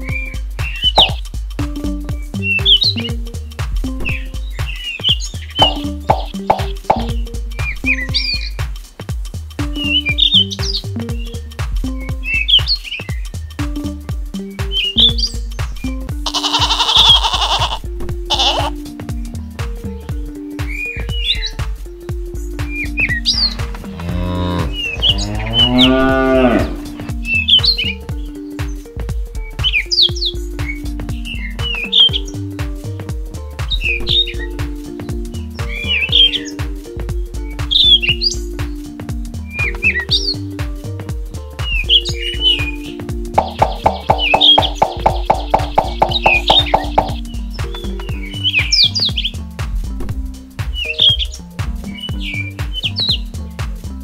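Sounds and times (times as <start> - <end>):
background music: 0.0 - 54.0
birdsong chirping: 0.0 - 54.0
cow mooing: 23.8 - 27.0.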